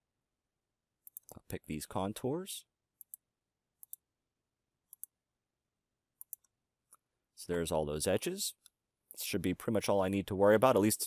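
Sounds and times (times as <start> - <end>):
computer mouse clicks: 1.0 - 1.4, 3.0 - 3.2, 3.8 - 4.0, 4.9 - 5.2, 6.2 - 7.0.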